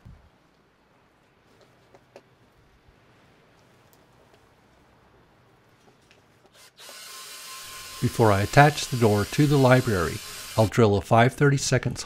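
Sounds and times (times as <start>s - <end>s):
cordless drill boring wood: 6.6s - 10.8s.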